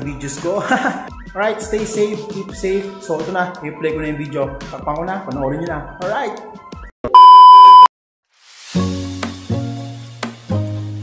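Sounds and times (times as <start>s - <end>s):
music: 0.0s - 6.9s, 8.4s - 11.0s
test tone beep: 7.1s - 7.9s.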